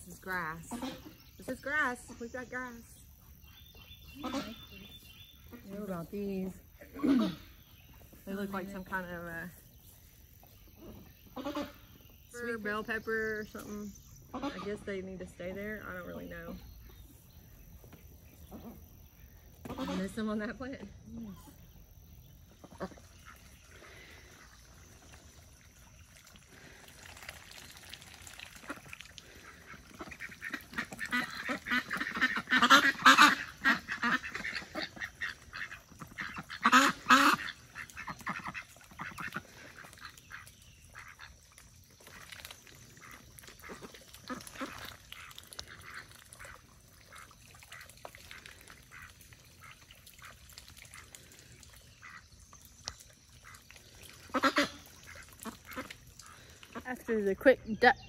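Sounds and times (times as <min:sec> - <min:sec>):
ducks quacking: 0:00.0 - 0:09.6, 0:10.7 - 0:16.6, 0:19.6 - 0:20.8, 0:22.5 - 0:24.7, 0:28.5 - 0:58.0.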